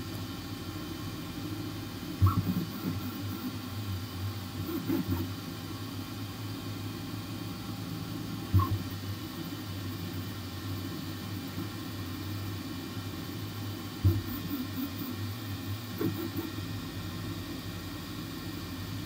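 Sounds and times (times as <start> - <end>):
printer motors and fans humming: 0.0 - 19.0.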